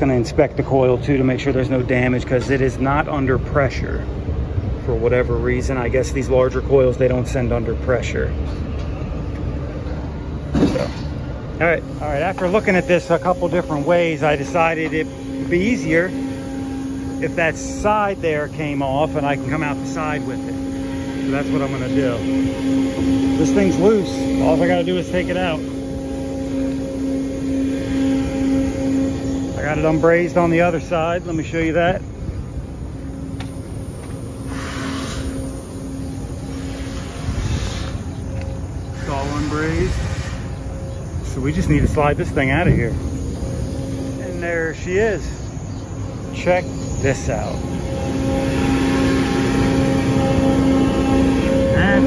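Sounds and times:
machinery humming: 0:00.0 - 0:52.0.

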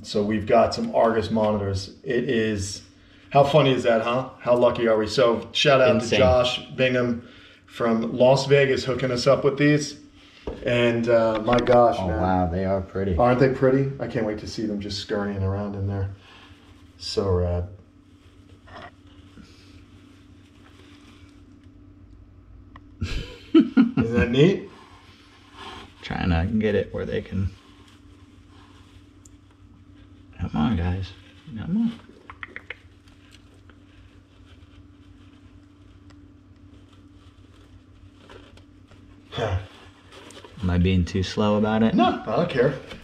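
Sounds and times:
steady hum: 0:00.0 - 0:43.0.

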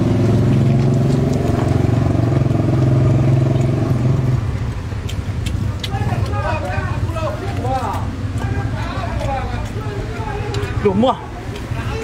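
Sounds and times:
engine low hum: 0:00.0 - 0:10.3.

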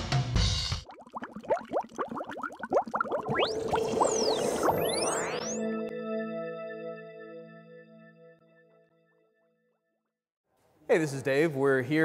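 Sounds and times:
rising bubbling bloops: 0:00.8 - 0:05.6
long rising glide: 0:03.2 - 0:05.7.

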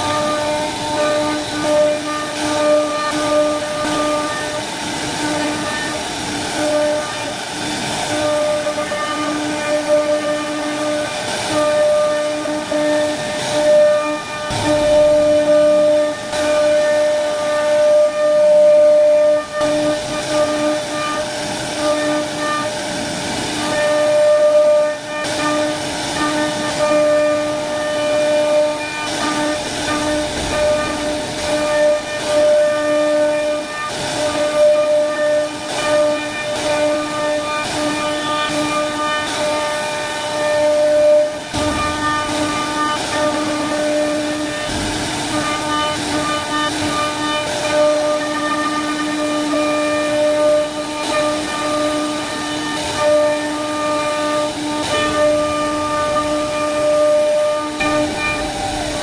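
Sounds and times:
hiss of cutting wood: 0:00.0 - 0:59.0
router spindle whining: 0:00.0 - 0:59.0.

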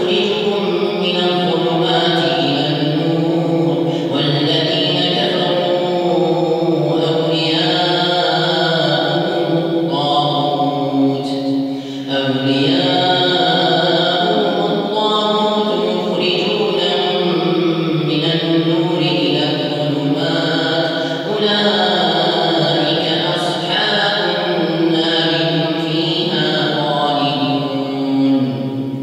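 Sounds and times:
man chanting recitation: 0:00.0 - 0:29.0.

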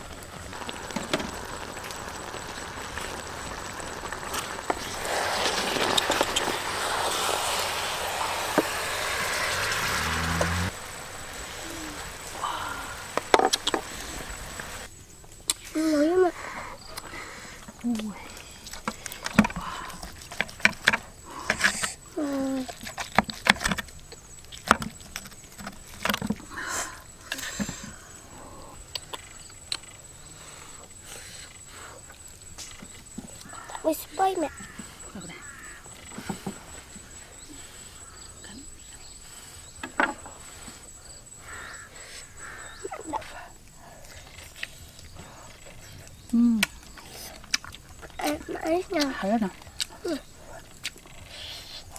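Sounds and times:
thin steady high tone: 0:00.0 - 0:14.9.

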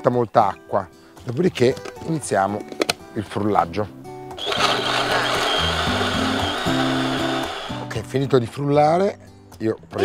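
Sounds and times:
electric blender whining: 0:04.4 - 0:07.8.

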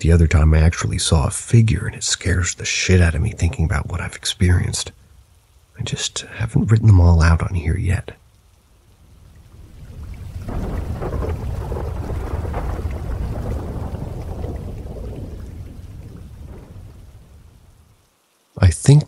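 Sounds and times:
rain: 0:00.0 - 0:19.0
rolling thunder: 0:03.0 - 0:04.2, 0:09.4 - 0:18.0.

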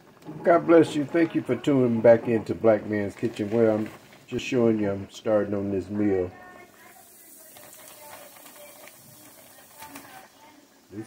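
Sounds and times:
fish frying in hot oil: 0:06.6 - 0:11.0.

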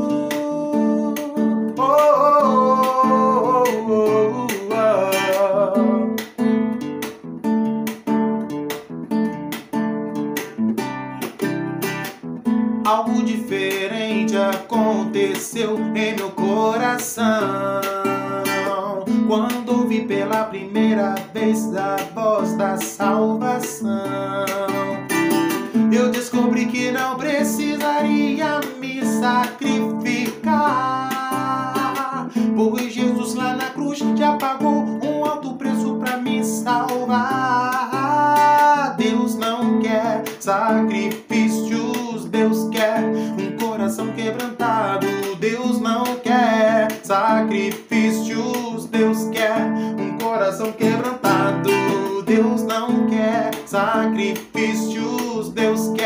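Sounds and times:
man singing: 0:00.0 - 0:06.5, 0:12.8 - 0:56.0
strummed acoustic guitar: 0:00.0 - 0:56.0.

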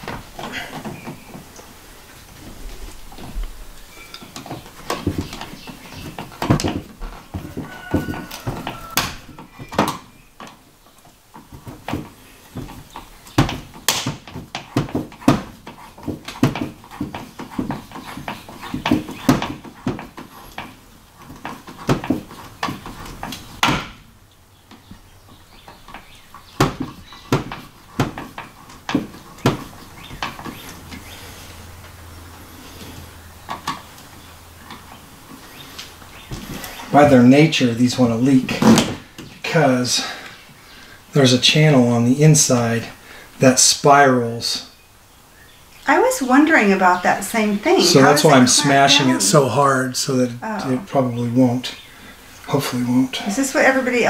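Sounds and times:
sharp knocks: 0:11.3 - 0:24.1, 0:25.6 - 0:30.6.

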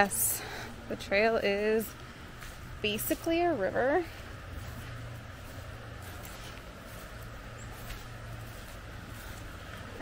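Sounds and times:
footsteps on muddy trail: 0:00.0 - 0:10.0
outdoor background hiss: 0:00.0 - 0:10.0.

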